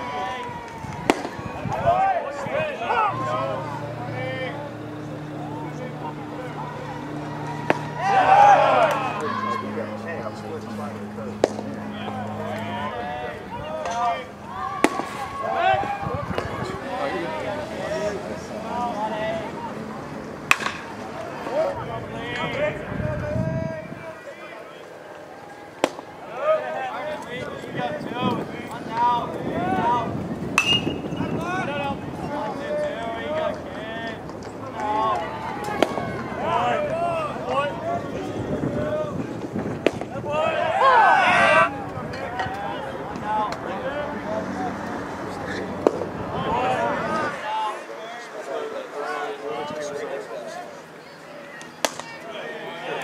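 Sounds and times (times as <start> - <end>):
players calling out: 0.0 - 53.0
baseball smacking into mitt: 0.9 - 1.4, 20.5 - 20.9, 25.8 - 26.1, 39.8 - 40.1, 51.8 - 52.1.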